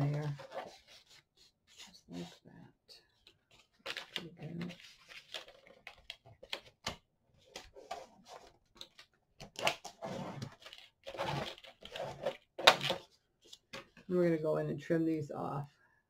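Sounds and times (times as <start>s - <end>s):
paper rustling and crinkling: 0.0s - 2.3s, 3.2s - 14.1s.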